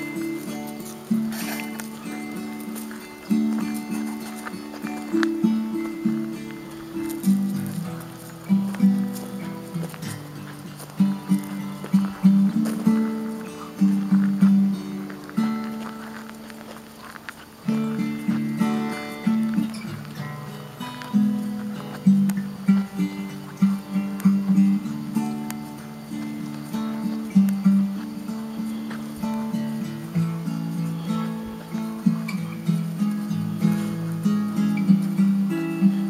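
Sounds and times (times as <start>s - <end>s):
plucked acoustic guitar: 0.0s - 36.0s.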